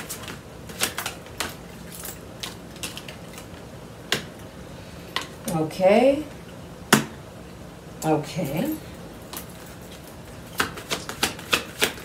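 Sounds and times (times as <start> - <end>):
cards being shuffled: 0.0 - 4.3, 9.9 - 12.0.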